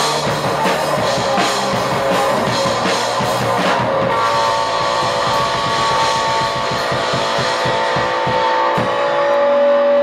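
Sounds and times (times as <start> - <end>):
quick steady drumbeat: 0.0 - 9.1
distorted electric guitars: 0.0 - 10.0.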